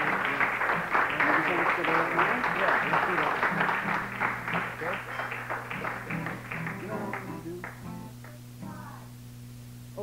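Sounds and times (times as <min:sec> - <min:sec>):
steady low hum: 0:00.0 - 0:10.0
acoustic guitar picked lightly: 0:02.2 - 0:10.0.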